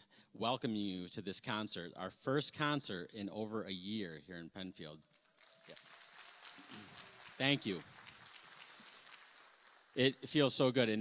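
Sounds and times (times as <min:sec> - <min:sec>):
audience clapping: 0:05.1 - 0:10.6.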